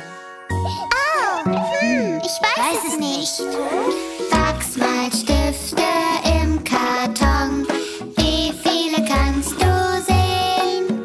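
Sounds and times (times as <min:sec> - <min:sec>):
children's song music with chimes: 0:00.0 - 0:11.0
cartoon child's voice gliding: 0:01.0 - 0:03.8.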